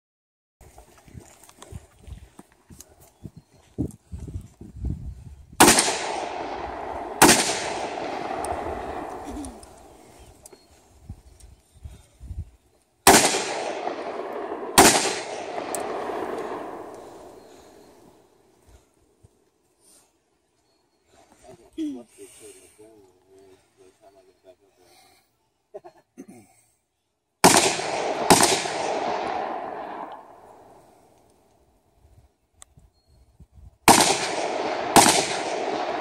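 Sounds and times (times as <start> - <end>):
gunshots with rolling echo: 5.6 - 10.1, 13.0 - 18.2, 27.4 - 31.1, 33.9 - 36.0.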